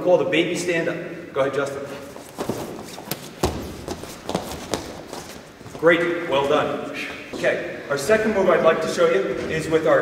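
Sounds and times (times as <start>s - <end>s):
bodies thumping on wrestling mat: 2.2s - 5.6s.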